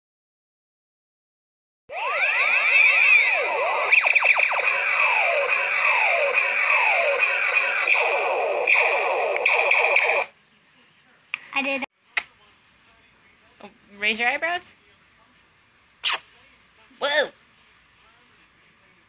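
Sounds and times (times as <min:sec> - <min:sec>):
steady high electronic tone: 0:01.9 - 0:10.3
toy electronic siren sweeps: 0:01.9 - 0:10.3.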